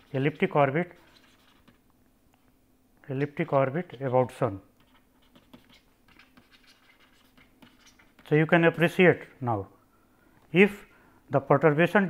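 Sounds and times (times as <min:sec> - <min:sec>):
stylus scratching on tablet: 0:00.0 - 0:01.8, 0:03.1 - 0:09.3.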